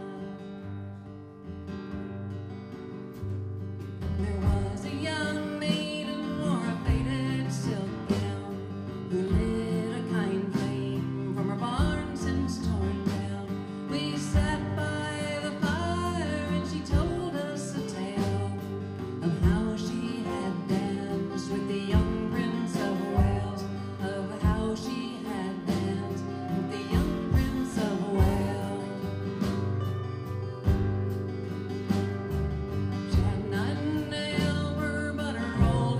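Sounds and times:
acoustic guitars strumming: 0.0 - 35.9
lap steel guitar sliding: 14.8 - 35.9.

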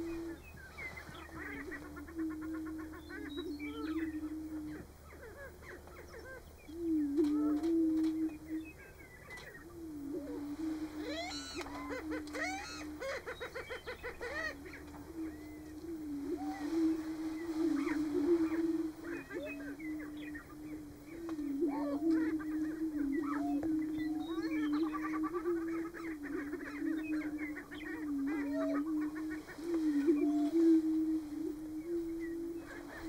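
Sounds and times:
low hollow booming hoots: 0.0 - 33.0.

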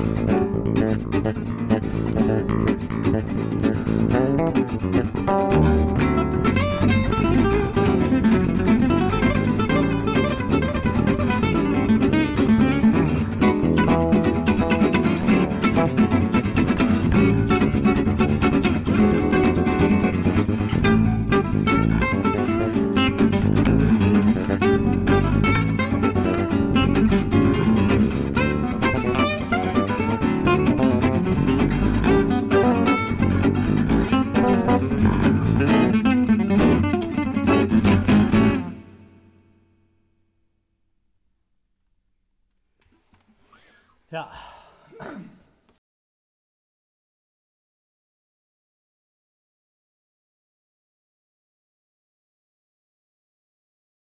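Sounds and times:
gypsy jazz on acoustic guitars: 0.0 - 39.3
bass: 0.0 - 40.5.

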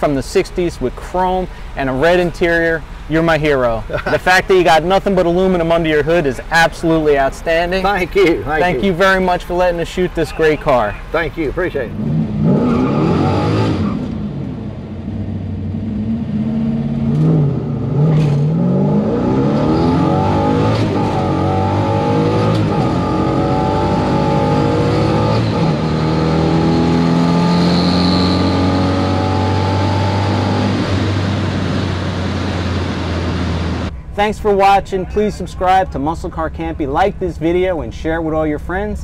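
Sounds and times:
car engine revving from cabin: 11.9 - 14.4, 15.1 - 33.9.

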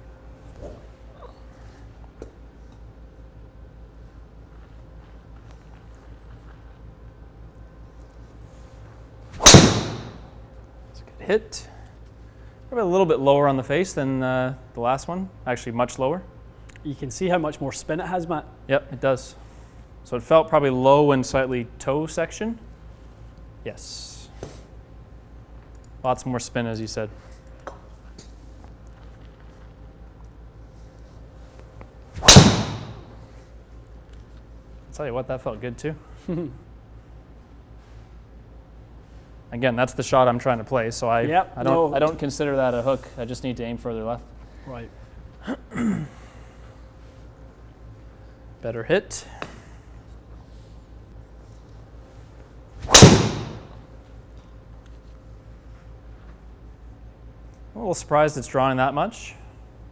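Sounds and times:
golf driver striking ball: 9.4 - 10.3, 32.2 - 33.2, 52.8 - 53.8.

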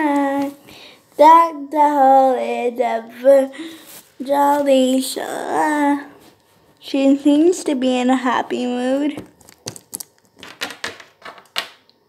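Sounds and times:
hands handling objects: 9.2 - 11.5.

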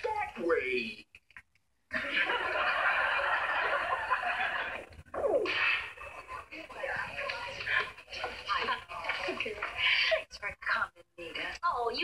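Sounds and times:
studio audience laughing: 1.9 - 9.6
voices: 2.0 - 12.0.

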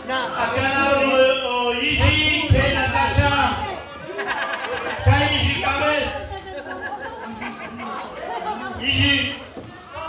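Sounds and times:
people talking over one another: 0.0 - 10.0.

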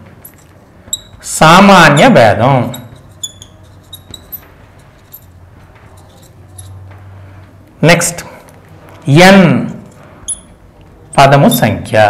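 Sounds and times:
marker squeaking on glass: 0.3 - 6.8, 10.2 - 10.6, 11.4 - 11.8
man speaking: 1.2 - 2.9, 11.1 - 12.0.

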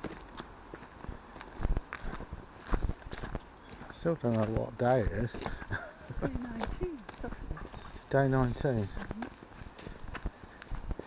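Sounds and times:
footsteps crunching on leaves: 0.0 - 11.0.

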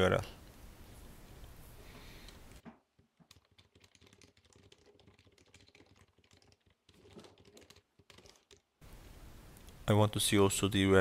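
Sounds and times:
computer keyboard typing: 3.2 - 8.7.

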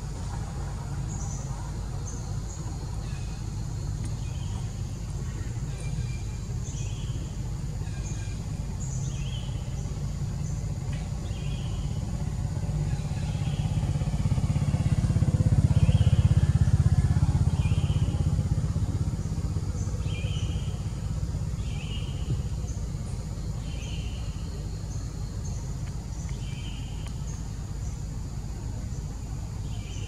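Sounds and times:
low engine rumble: 0.0 - 30.0.

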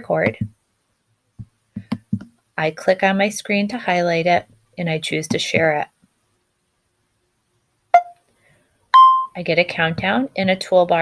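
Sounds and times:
countdown beeps: 8.0 - 8.2, 9.0 - 9.4.

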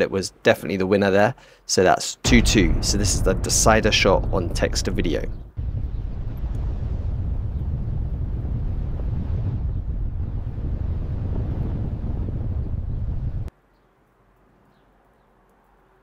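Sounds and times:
loud rushing wind: 2.3 - 13.5.

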